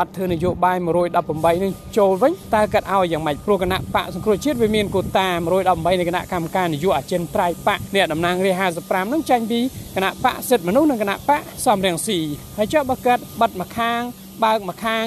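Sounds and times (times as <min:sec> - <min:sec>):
person talking: 0:00.0 - 0:15.0.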